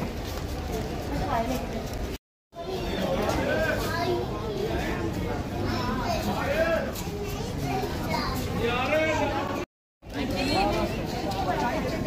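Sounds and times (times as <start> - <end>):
child talking: 3.8 - 6.4, 7.0 - 8.6.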